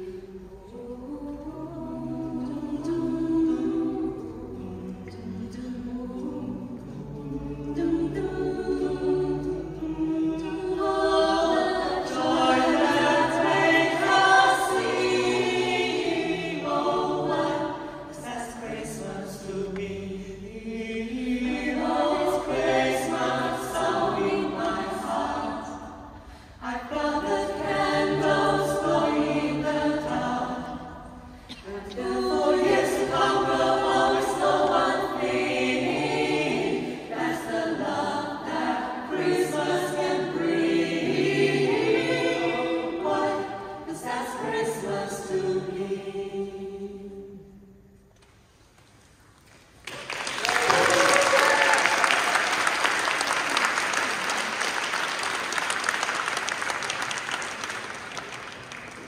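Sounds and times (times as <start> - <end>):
choir singing unaccompanied: 0.0 - 48.0.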